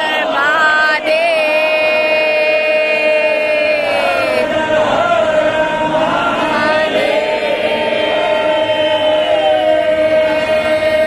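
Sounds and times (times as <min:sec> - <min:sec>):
group chanting: 0:00.0 - 0:11.0
long held drone note: 0:00.0 - 0:11.0.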